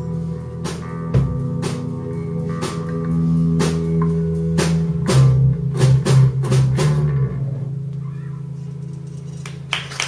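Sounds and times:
live band playing: 0:00.0 - 0:10.0
people clapping: 0:09.4 - 0:10.0.

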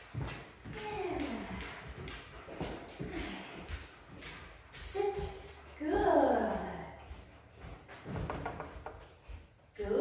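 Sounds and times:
dog claws tapping on floor: 0:00.0 - 0:05.8, 0:07.2 - 0:09.6
footsteps on hard floor: 0:00.0 - 0:10.0.

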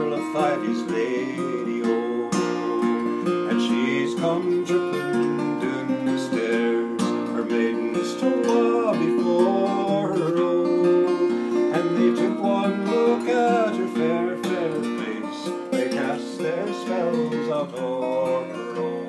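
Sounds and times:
acoustic guitar strumming: 0:00.0 - 0:19.0
man singing: 0:00.0 - 0:19.0.

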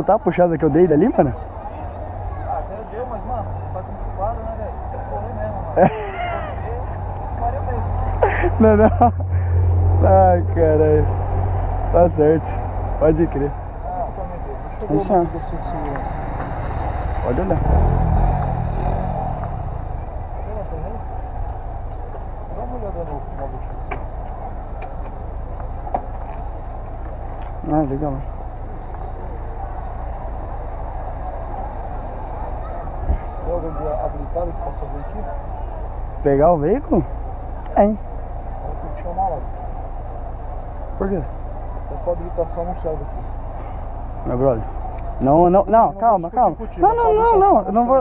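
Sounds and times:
indistinct voices talking: 0:00.0 - 0:48.0
low vehicle rumble: 0:00.0 - 0:48.0.

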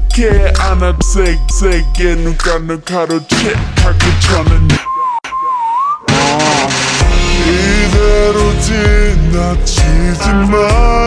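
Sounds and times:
slowed-down music track: 0:00.0 - 0:11.0
whistled melody: 0:04.3 - 0:07.1.

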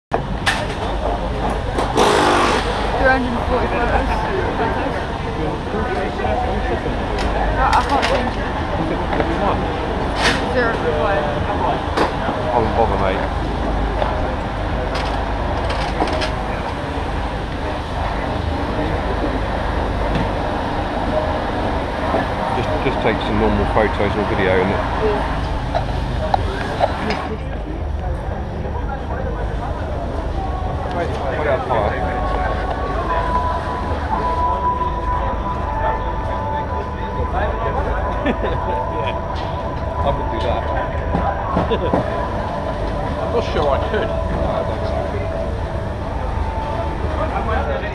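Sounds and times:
background voices: 0:00.1 - 0:47.9
steady low hum: 0:00.9 - 0:47.9.

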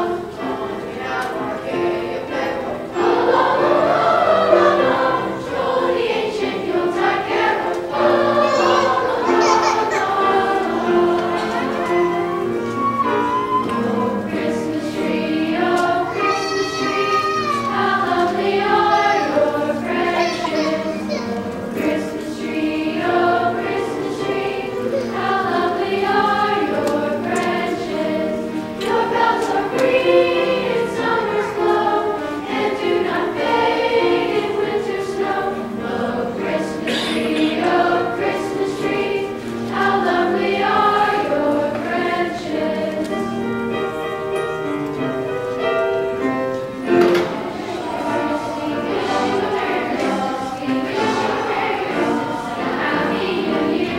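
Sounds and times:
school chorus singing in harmony: 0:00.0 - 0:53.9.

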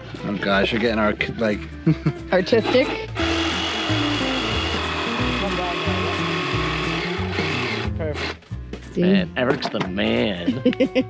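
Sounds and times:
background music: 0:00.0 - 0:11.0
jigsaw cutting wood: 0:02.5 - 0:08.4.

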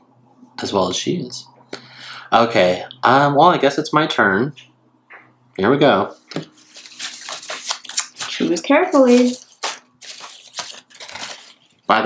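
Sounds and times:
paper cards rustling in a hat: 0:06.3 - 0:11.9
person speaking: 0:07.5 - 0:12.0.

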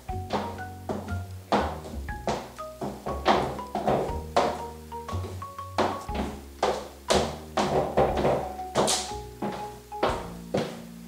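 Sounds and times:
high heels clicking on laminate floor: 0:00.0 - 0:10.9
background music: 0:00.0 - 0:11.0.

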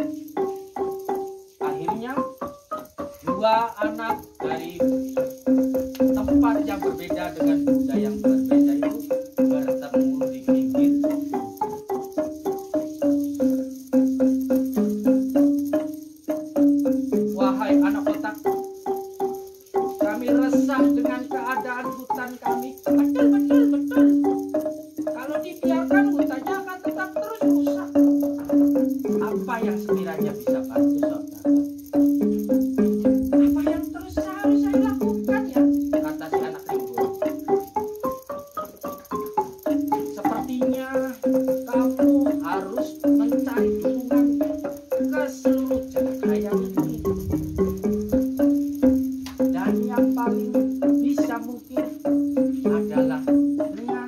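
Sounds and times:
wooden xylophone melody: 0:00.0 - 0:54.0.

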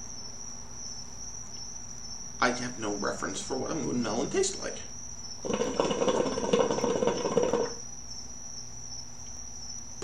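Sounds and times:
high-pitched insect-like trill: 0:00.0 - 0:10.0
low background hum: 0:00.0 - 0:10.0.

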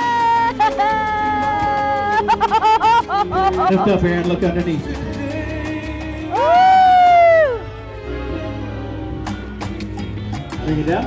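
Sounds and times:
background music: 0:00.0 - 0:11.0
woman's amazed exclamation: 0:06.4 - 0:07.6.

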